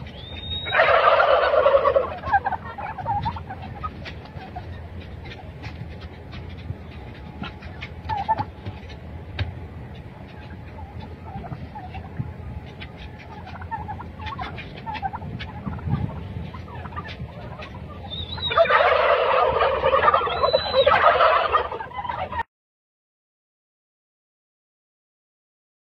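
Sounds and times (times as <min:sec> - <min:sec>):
faint turkey calls and clicks: 0:00.0 - 0:22.4
turkeys gobbling in chorus: 0:00.0 - 0:22.4.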